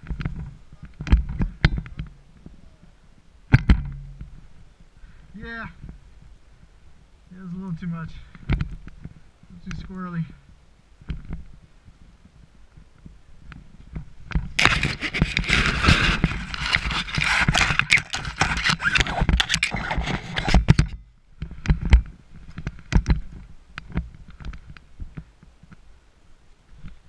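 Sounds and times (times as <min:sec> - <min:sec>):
rustling and scraping of gear: 0:00.0 - 0:06.8, 0:07.4 - 0:25.8
clicks and knocks of gear: 0:13.5 - 0:21.0.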